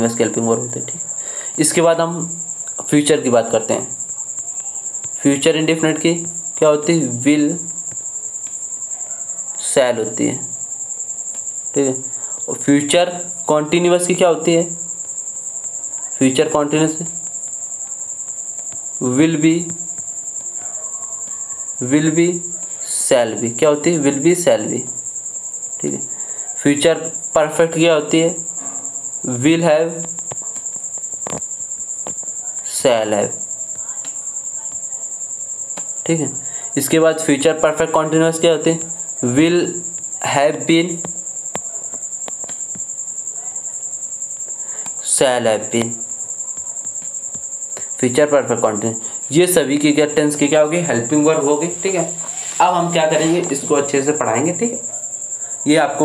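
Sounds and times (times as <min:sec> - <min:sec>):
cricket chirping: 0:00.0 - 0:56.0
insect trilling: 0:00.0 - 0:56.0.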